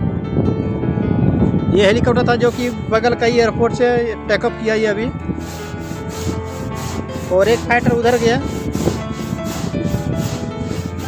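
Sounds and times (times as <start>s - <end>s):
steady rushing scraping noise: 2.3s - 3.0s, 5.4s - 11.0s.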